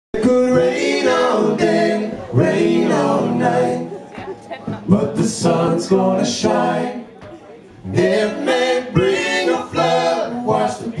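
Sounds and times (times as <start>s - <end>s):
male voices singing in harmony: 0.2s - 11.0s.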